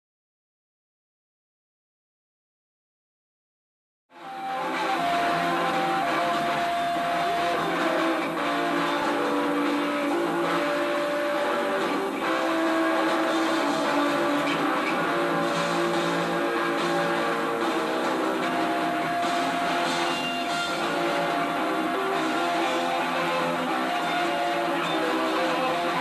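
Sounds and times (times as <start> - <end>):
drums: 4.1 - 26.0
electric guitars sustained notes: 4.2 - 26.0
bass: 4.3 - 26.0.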